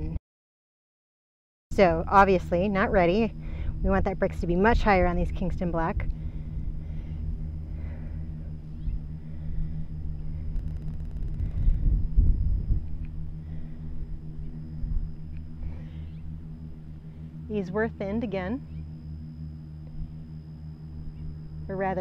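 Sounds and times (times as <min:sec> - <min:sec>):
low rumble with hum: 0:00.0 - 0:00.2, 0:01.7 - 0:22.0.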